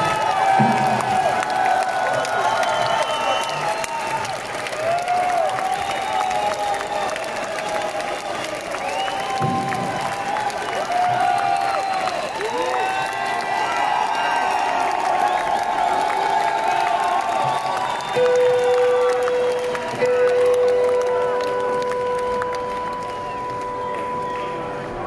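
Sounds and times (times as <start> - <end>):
crowd applauding and cheering: 0.0 - 25.0
whoops and whistles: 2.0 - 4.2, 5.1 - 13.2, 16.8 - 20.2.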